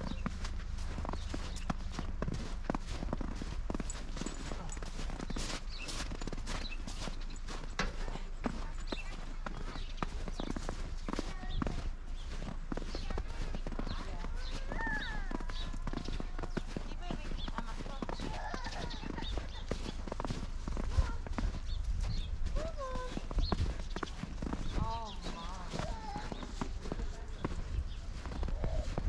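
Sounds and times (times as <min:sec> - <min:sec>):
footsteps crunching through snow: 0:00.0 - 0:29.0
distant children calling: 0:13.2 - 0:16.9, 0:17.5 - 0:21.6, 0:24.4 - 0:27.6.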